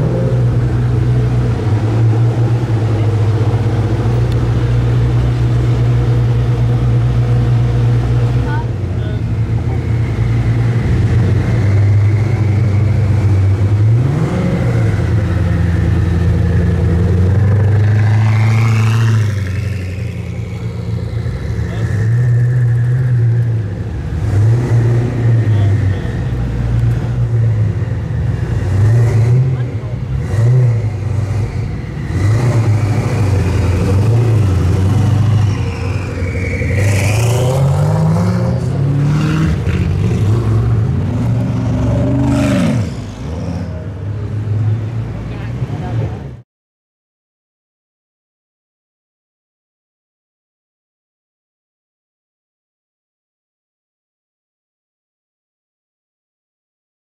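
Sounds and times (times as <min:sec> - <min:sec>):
car engine revving: 0:00.0 - 0:46.3.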